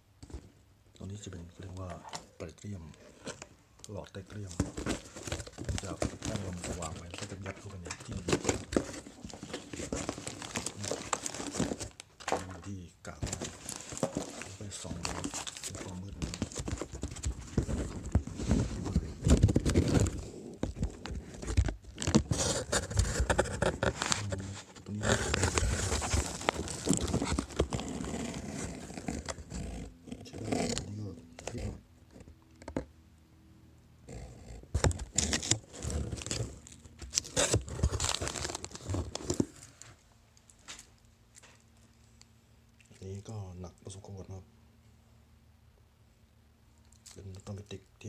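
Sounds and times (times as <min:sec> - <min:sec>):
packaging crinkling: 0:04.4 - 0:12.6, 0:13.2 - 0:29.4, 0:34.8 - 0:39.8.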